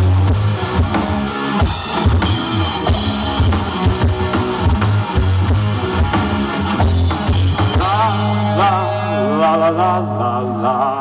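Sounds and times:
rock band holding low note: 0.0s - 11.0s
man singing: 7.5s - 11.0s.

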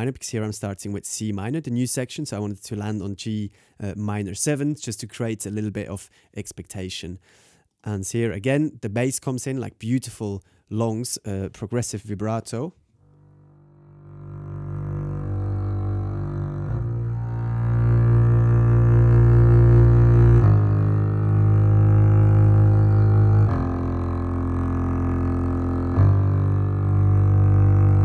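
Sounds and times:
double bass with vibrato: 13.0s - 28.0s
solo strings playing held chords: 13.1s - 28.0s.

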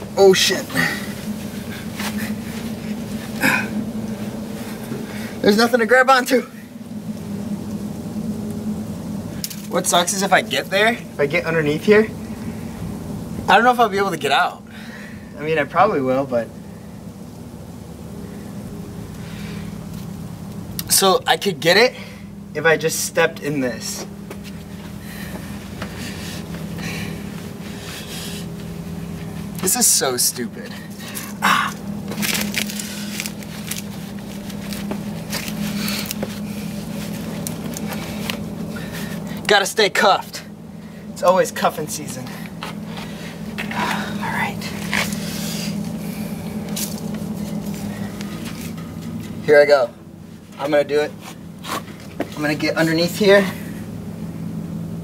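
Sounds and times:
low machine hum: 0.0s - 55.0s.

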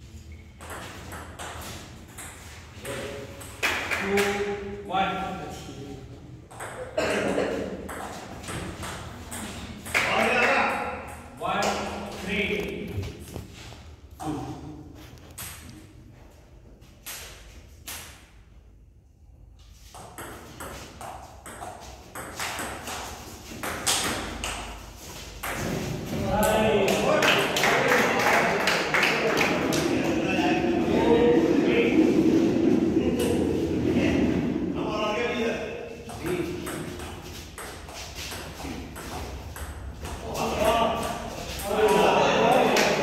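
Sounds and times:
voices in room: 1.1s - 16.7s, 22.3s - 43.0s.

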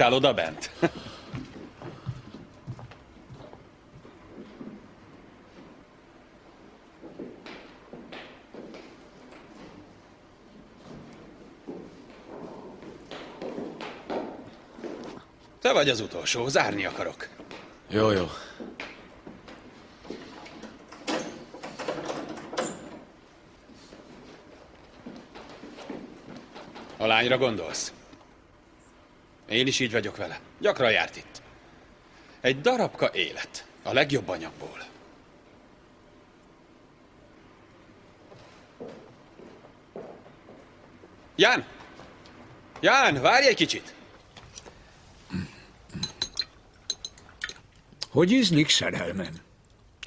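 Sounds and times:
cutlery clinking on plates: 46.0s - 47.6s.

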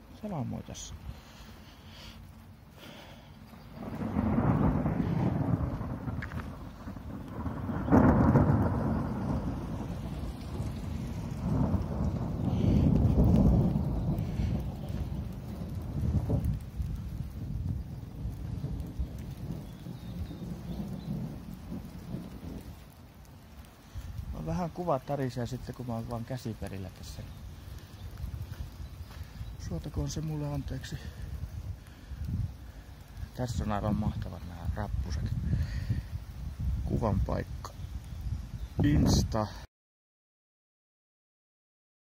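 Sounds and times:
thunder rumbling: 0.0s - 39.7s.

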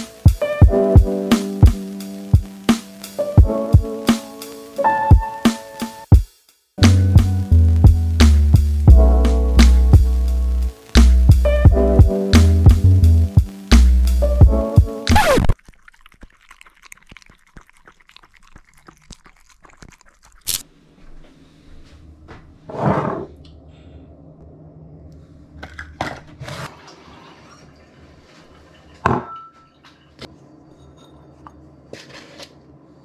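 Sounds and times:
background music with drums: 0.0s - 15.2s
objects set down on worktop: 29.0s - 30.0s.

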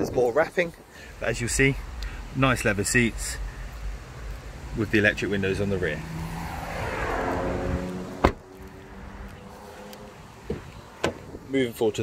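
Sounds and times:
background traffic: 0.0s - 12.0s
car door shutting: 8.1s - 8.5s, 10.4s - 11.4s.

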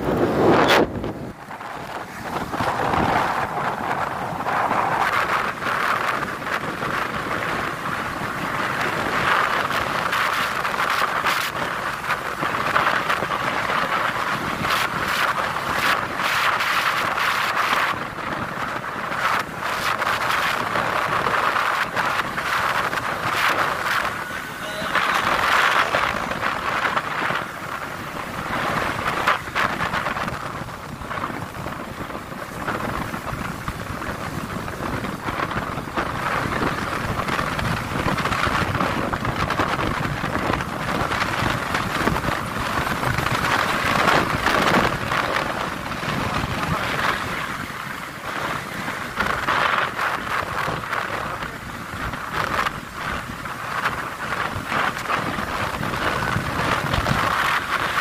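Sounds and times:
motorcycle running: 0.0s - 58.0s
road noise: 0.0s - 58.0s
wind rushing over microphone: 0.0s - 58.0s.

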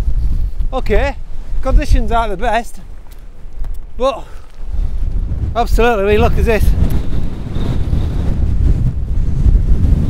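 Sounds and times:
gusty wind buffeting microphone: 0.0s - 10.0s.

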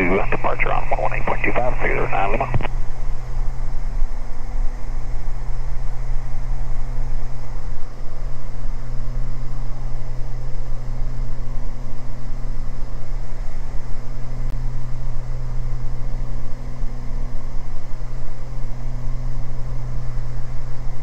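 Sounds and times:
propeller engines humming: 0.0s - 9.6s.

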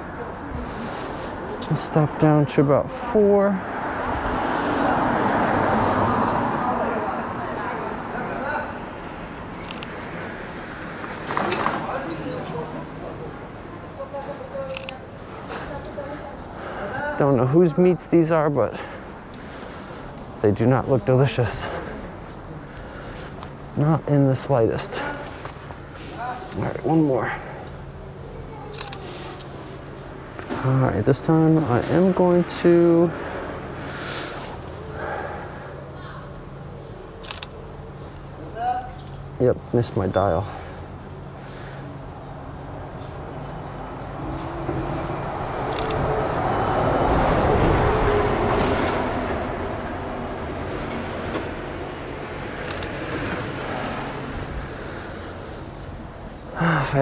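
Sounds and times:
traffic hum: 0.0s - 57.0s
voices of passers-by: 0.0s - 57.0s.

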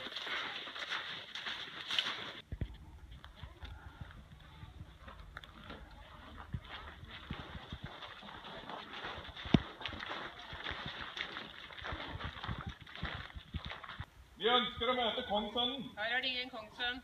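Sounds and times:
footsteps crunching on snow: 0.0s - 2.6s, 4.8s - 14.1s.

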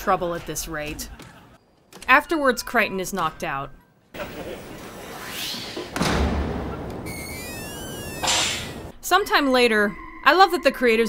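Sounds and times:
electronic gliding tones: 7.0s - 11.0s.

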